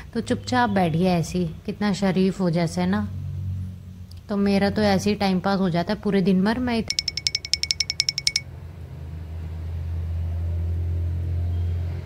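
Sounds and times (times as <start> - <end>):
high-pitched ticks: 6.9 - 8.4.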